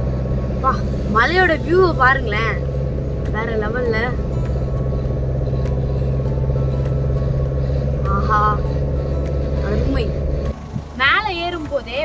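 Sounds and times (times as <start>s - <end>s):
car engine and road drone: 0.0s - 12.0s.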